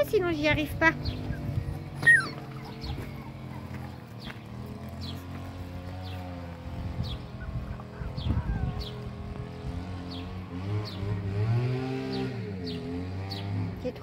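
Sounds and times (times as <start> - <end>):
low engine-like hum: 0.0 - 14.0.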